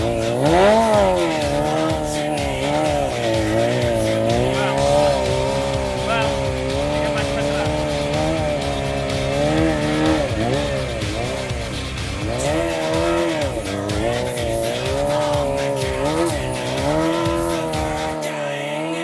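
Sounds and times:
motorcycle engine revving: 0:00.0 - 0:19.0.

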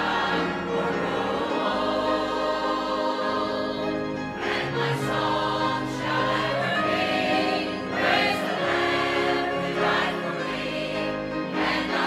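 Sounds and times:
choir and congregation singing hymn: 0:00.0 - 0:12.0.

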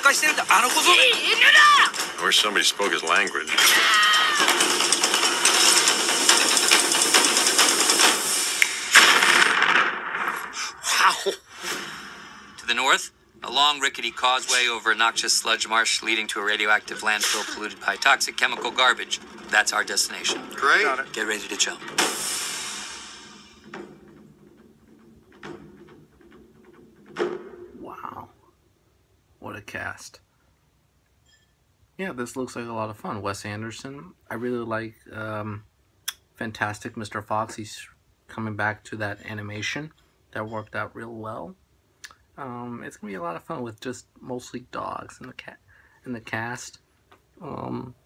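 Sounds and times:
mechanical rattling and clattering: 0:00.0 - 0:10.6, 0:13.4 - 0:27.8
loud sharp crash: 0:00.0 - 0:13.0, 0:14.2 - 0:24.2
faint knocks: 0:23.6 - 0:27.8.

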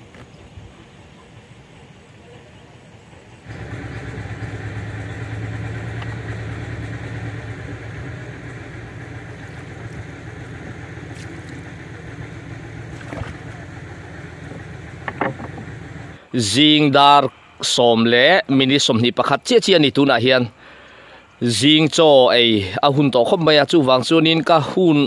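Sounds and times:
engine running low hum: 0:00.0 - 0:17.5.

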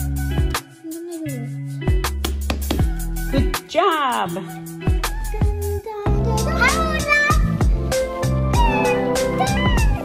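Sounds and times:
song with beat and singing: 0:00.0 - 0:03.6, 0:04.5 - 0:10.0.

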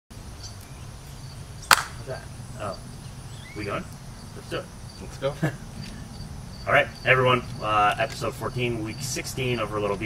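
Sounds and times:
sharp hand clap: 0:01.7 - 0:02.0.

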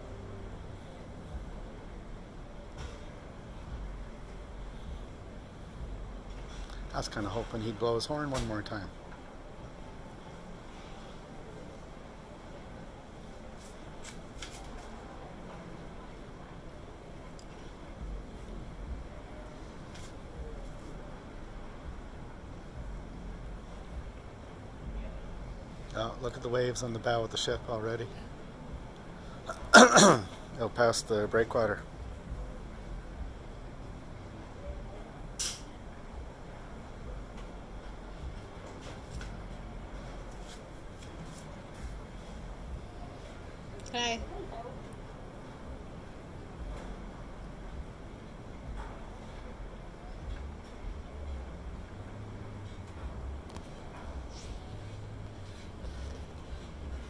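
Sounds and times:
faint outdoor hiss: 0:00.0 - 0:57.0.

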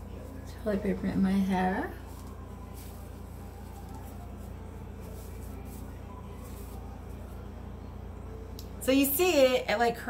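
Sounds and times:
steady low hum: 0:00.0 - 0:10.0
paper and hair rustling: 0:01.8 - 0:07.4.

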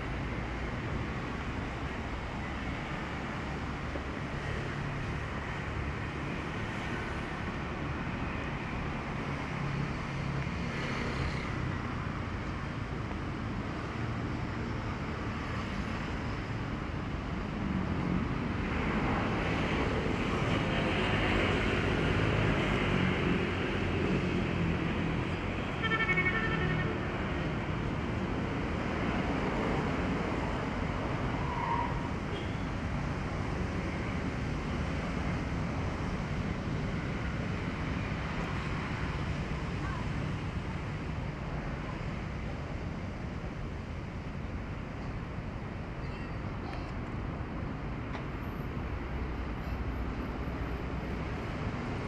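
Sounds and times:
road traffic rumble: 0:00.0 - 0:52.0.

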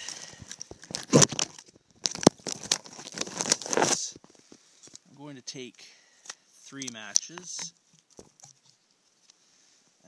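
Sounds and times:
rustling and crinkling handling: 0:00.0 - 0:09.4.

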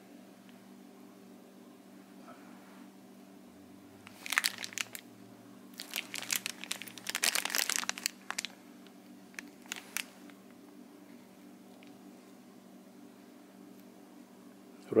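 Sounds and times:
plastic bags crinkling: 0:04.0 - 0:05.0, 0:05.7 - 0:08.6, 0:09.3 - 0:10.4.

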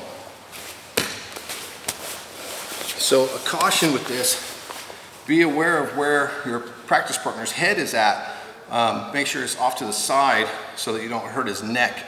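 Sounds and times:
cloth rustling: 0:00.4 - 0:05.3
bodies slapping on a mat: 0:00.9 - 0:02.9.

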